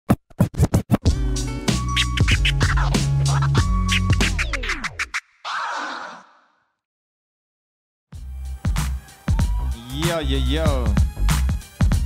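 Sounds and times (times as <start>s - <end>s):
turntable scratches: 0.1s - 1.1s, 1.8s - 6.2s
hip hop beat with bass and synth: 1.0s - 5.2s, 8.2s - 12.0s.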